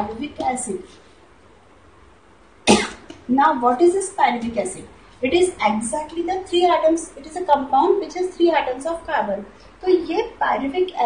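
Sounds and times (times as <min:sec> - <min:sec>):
faint room noise: 0:00.0 - 0:11.0
woman coughing: 0:02.7 - 0:03.2.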